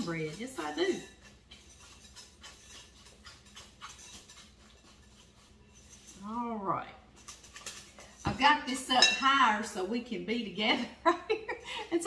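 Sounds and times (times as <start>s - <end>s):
whisk scraping glass bowl: 0.0s - 10.2s.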